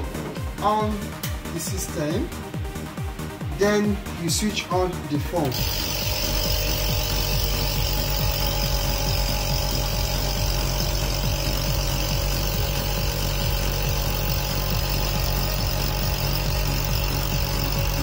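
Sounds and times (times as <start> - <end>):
vacuum pump humming: 5.4 - 18.0.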